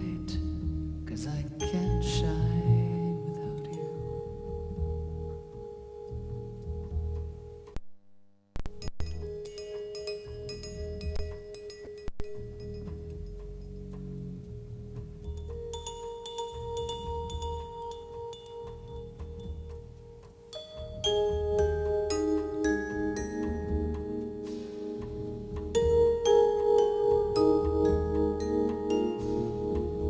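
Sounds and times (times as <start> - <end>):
upright double bass notes: 0.0 - 7.8, 12.2 - 30.0
light vibraphone strikes: 8.8 - 14.2, 15.1 - 30.0.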